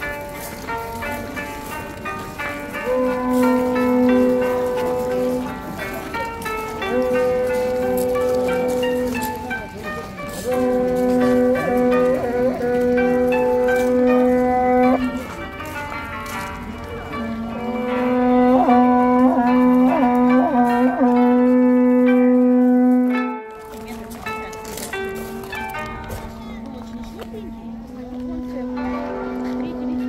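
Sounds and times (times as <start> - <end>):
conch-shell trumpet blasts: 2.8 - 5.7, 6.9 - 9.2, 10.3 - 15.2, 17.3 - 23.5, 27.6 - 30.0.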